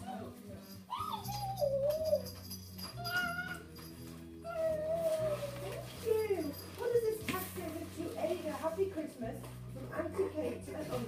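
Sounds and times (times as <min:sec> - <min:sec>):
dog whining: 0:00.9 - 0:03.8, 0:04.4 - 0:06.4.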